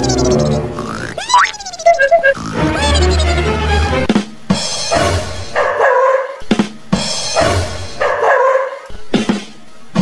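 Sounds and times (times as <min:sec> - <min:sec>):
dog barking: 0:05.5 - 0:06.4, 0:08.0 - 0:08.8.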